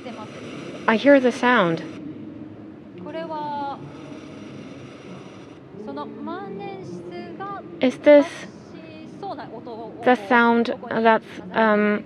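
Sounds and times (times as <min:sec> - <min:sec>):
hall murmur: 0:00.0 - 0:12.0.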